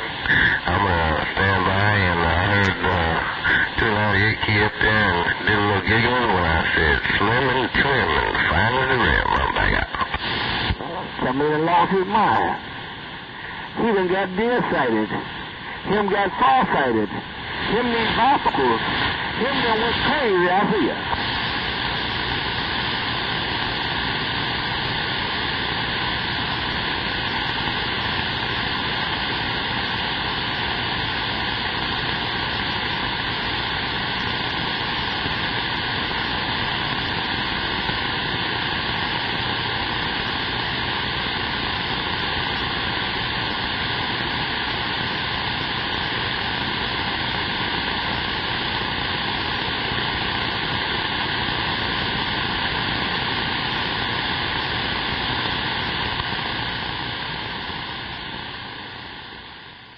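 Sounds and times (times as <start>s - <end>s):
radio static: 0.0s - 59.9s.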